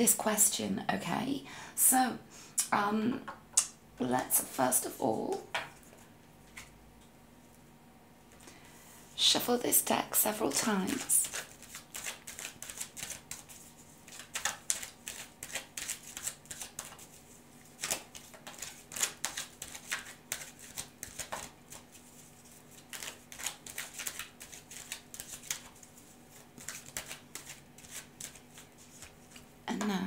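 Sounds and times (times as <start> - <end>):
cards being shuffled: 10.9 - 29.5.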